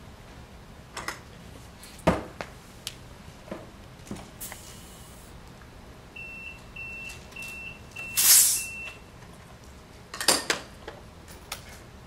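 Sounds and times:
short high electronic beeps: 6.2 - 9.0.

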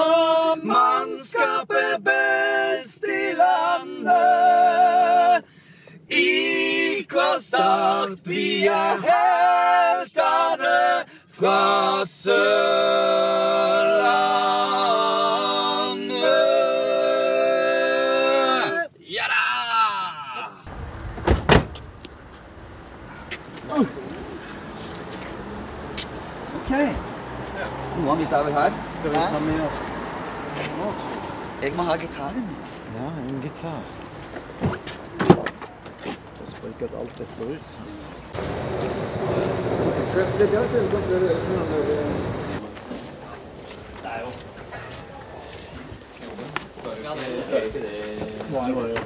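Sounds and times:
traffic noise: 20.6 - 49.0
car doors slamming: 20.7 - 22.1, 34.6 - 35.7
footsteps: 20.7 - 27.9, 28.8 - 31.5, 32.5 - 49.0.

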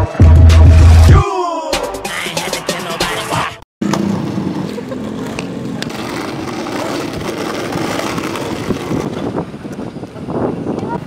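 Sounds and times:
skateboard wheels rolling on asphalt: 3.8 - 11.0.

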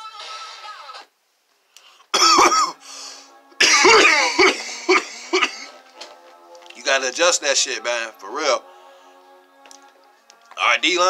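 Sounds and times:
faint music: 0.0 - 11.0
man coughing: 2.1 - 2.8, 3.6 - 5.8.

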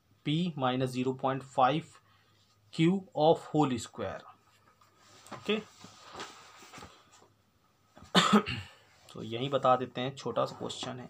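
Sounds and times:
person coughing: 8.0 - 8.9.

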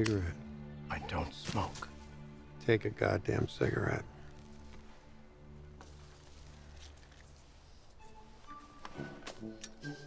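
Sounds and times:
orchestral string notes: 7.9 - 10.0.

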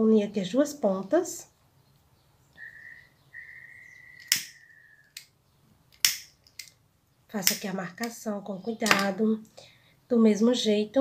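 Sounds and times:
faint high whistle-like tone: 2.6 - 5.2
lighter flint wheel clicks: 4.2 - 4.6.

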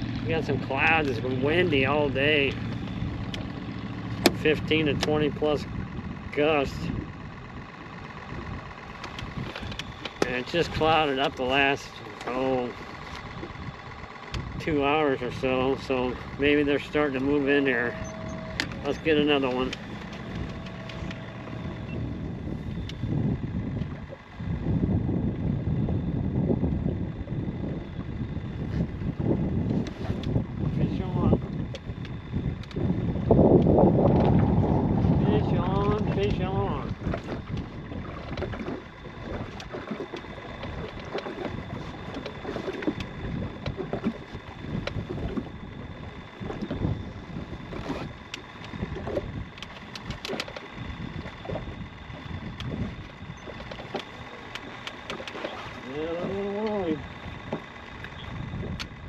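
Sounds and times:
water slapping hull: 0.0 - 25.0, 26.5 - 59.0
wind buffeting microphone: 0.0 - 59.0.

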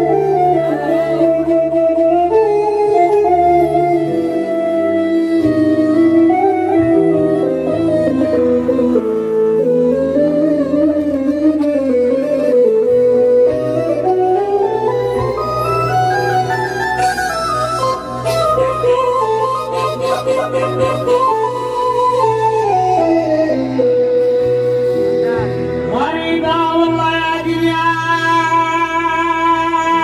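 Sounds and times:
electronic keyboard melody: 0.0 - 30.0.

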